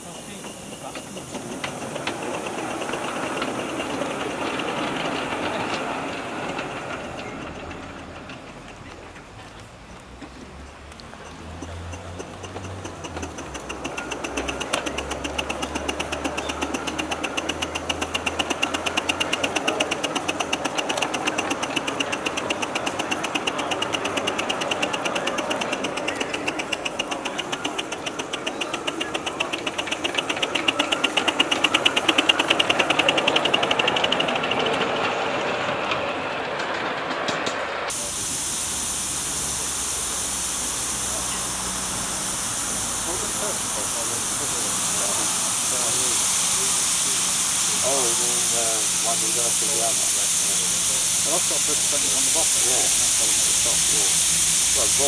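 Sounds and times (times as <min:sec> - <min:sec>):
steady hiss of steam: 0:00.0 - 0:08.3, 0:11.1 - 0:36.0, 0:37.6 - 0:55.0
steam locomotive chuffing: 0:00.0 - 0:55.0.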